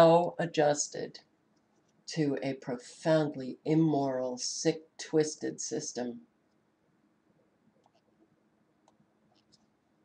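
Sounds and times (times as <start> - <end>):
computer mouse clicks: 7.8 - 8.1.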